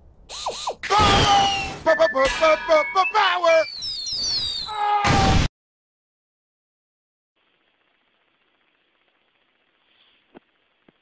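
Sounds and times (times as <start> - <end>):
high falling whistles: 0.3 - 4.8.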